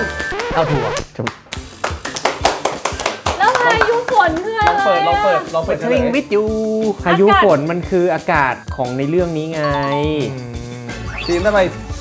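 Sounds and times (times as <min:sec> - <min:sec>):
background music: 0:00.0 - 0:12.0
people clapping hands: 0:00.2 - 0:05.2.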